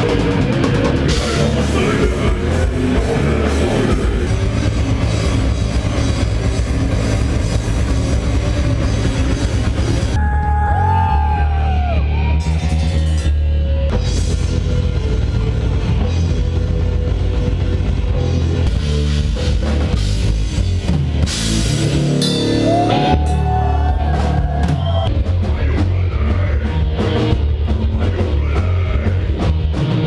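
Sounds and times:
heavy metal band playing loud: 0.0s - 30.0s.

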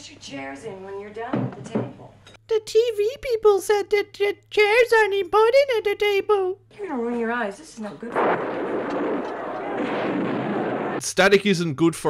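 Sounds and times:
gunfire and explosions on tv: 7.8s - 11.4s.

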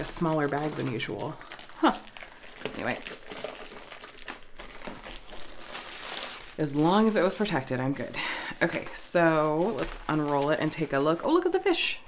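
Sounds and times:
plastic bag crinkling: 0.0s - 11.9s.

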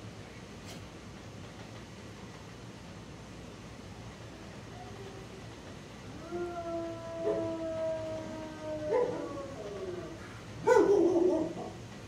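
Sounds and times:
dog howling: 6.1s - 11.8s
dog barking: 10.6s - 11.8s.

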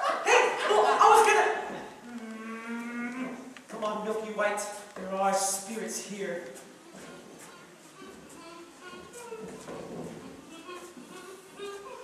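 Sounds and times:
person imitating cow moo: 2.0s - 3.5s.

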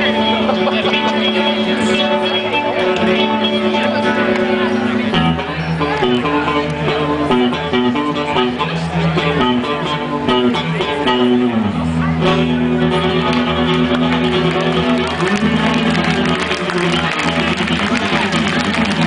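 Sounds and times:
electric guitar chords ringing: 0.0s - 19.0s.

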